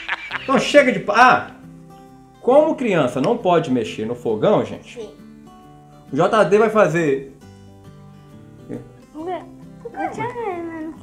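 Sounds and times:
guitar music: 0.0s - 11.0s.

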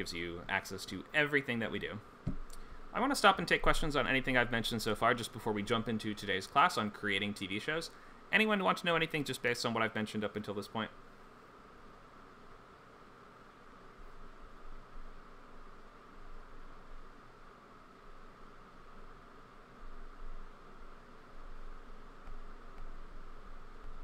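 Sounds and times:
microphone hiss: 0.0s - 24.0s.

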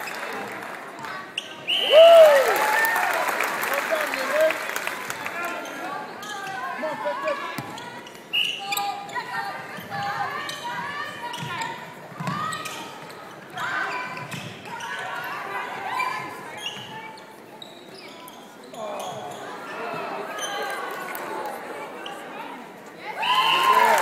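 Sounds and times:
voices calling out in a hall: 0.0s - 24.0s.

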